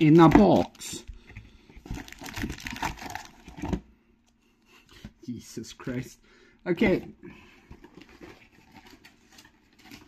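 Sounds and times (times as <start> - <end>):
foil packs crinkling: 1.8 - 3.8.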